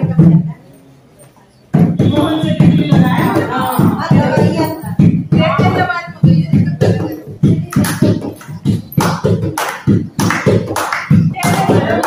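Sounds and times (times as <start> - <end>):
people clapping in rhythm: 1.7 - 12.0.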